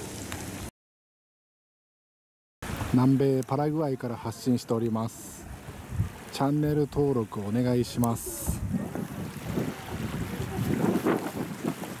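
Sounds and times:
small waves lapping: 0:02.6 - 0:12.0
wind gusting on microphone: 0:05.4 - 0:07.2, 0:07.8 - 0:12.0.

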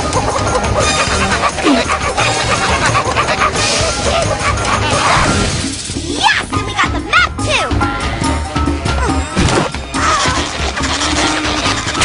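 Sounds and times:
fast cartoon chase music: 0:00.0 - 0:12.0.

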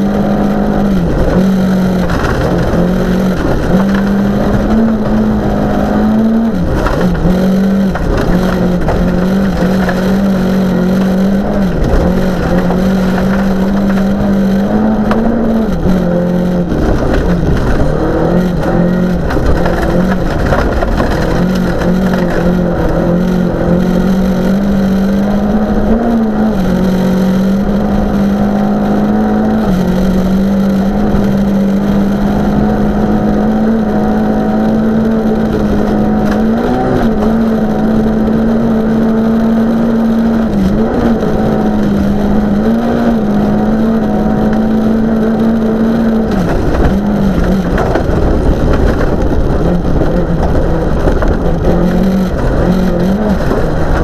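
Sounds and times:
rally car engine at high revs: 0:00.0 - 0:54.0
tyres rumbling on gravel: 0:00.0 - 0:54.0.

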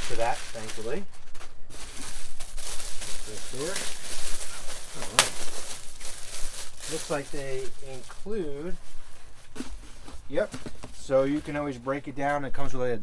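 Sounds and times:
plastic packaging crinkling: 0:00.0 - 0:11.4.

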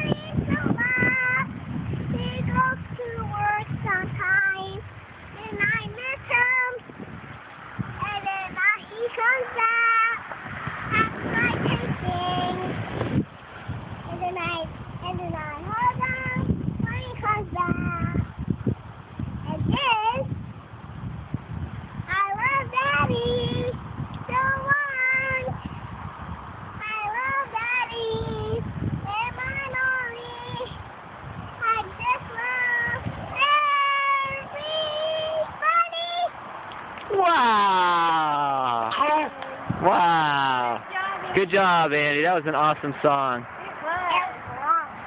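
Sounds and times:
girl singing in high voice: 0:00.0 - 0:06.9, 0:07.9 - 0:10.2, 0:10.9 - 0:12.9, 0:14.1 - 0:18.4, 0:19.4 - 0:20.3, 0:22.1 - 0:25.6, 0:26.8 - 0:30.8, 0:31.6 - 0:36.4.

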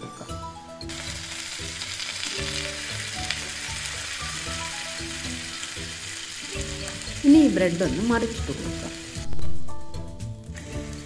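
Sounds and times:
batter sizzling in hot fat: 0:00.9 - 0:11.0.

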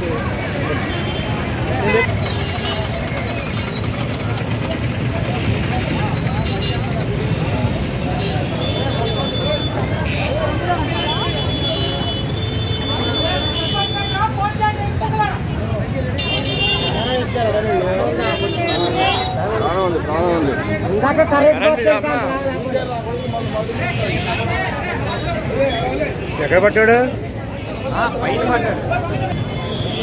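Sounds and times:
crowd talking: 0:00.0 - 0:30.0
street traffic noise: 0:00.0 - 0:30.0
vehicle horns: 0:00.7 - 0:03.4, 0:08.0 - 0:14.4, 0:16.1 - 0:17.3, 0:18.1 - 0:19.9, 0:23.1 - 0:28.0, 0:29.3 - 0:30.0.

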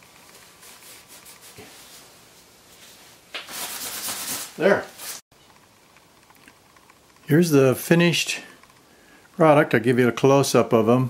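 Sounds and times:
paper towel rubbing wood: 0:03.5 - 0:05.2.

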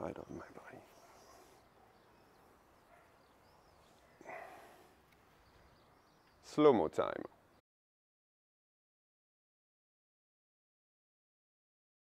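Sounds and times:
soft breathy exhale: 0:04.1 - 0:05.0.

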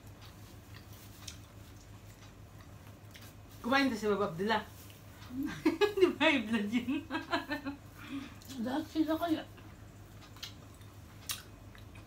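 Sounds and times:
food being chewed: 0:00.0 - 0:05.4, 0:09.6 - 0:12.0
low steady hum: 0:00.0 - 0:12.0.

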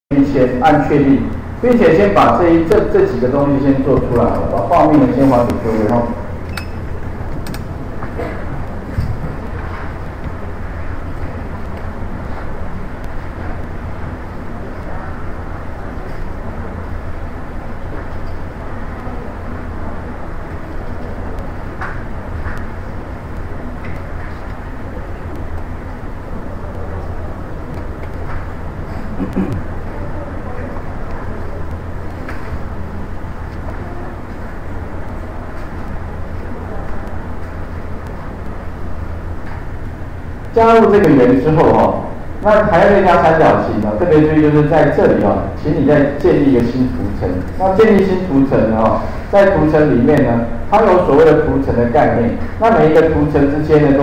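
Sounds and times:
low hum and hiss: 0:00.1 - 0:54.0.

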